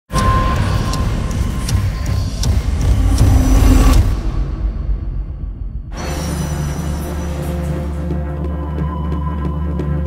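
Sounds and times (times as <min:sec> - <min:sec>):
heavy low rumble: 0:01.4 - 0:06.0.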